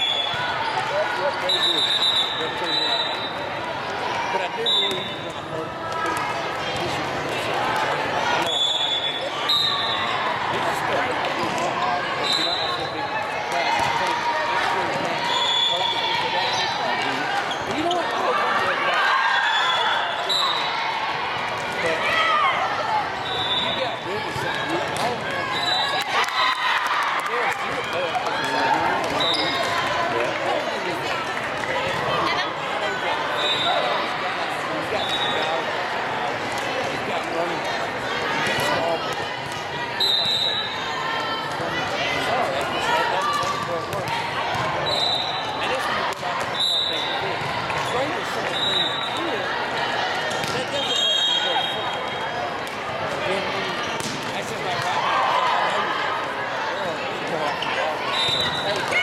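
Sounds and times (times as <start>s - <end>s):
chatter and calls of people: 0.0s - 59.0s
volleyball being hit and bouncing: 50.3s - 50.7s, 53.9s - 54.9s.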